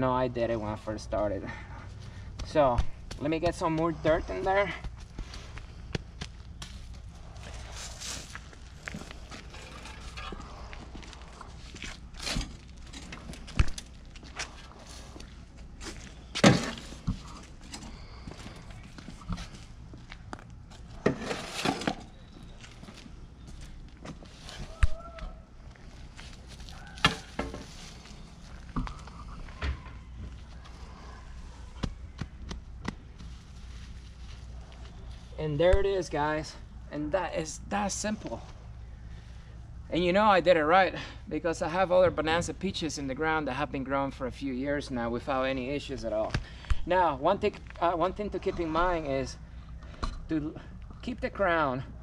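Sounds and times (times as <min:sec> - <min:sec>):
footsteps: 0:01.7 - 0:35.9
hands pressing dirt: 0:02.0 - 0:20.6
shovel scraping and knocking: 0:21.0 - 0:22.1.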